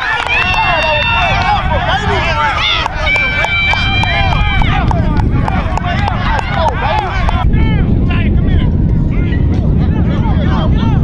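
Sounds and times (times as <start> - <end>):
voices calling out: 0.0 - 7.9
wind on microphone: 0.0 - 11.0.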